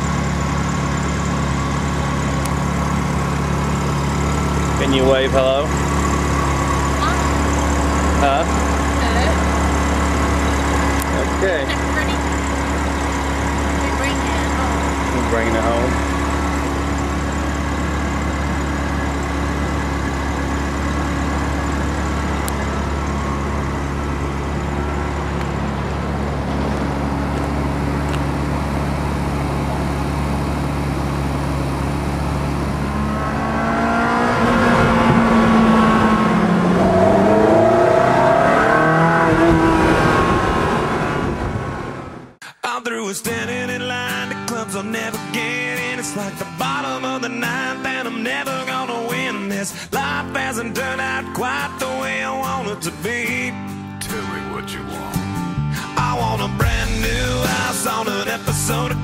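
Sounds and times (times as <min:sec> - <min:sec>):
car engine idling and revving: 0:00.0 - 0:42.4, 0:44.5 - 0:59.0.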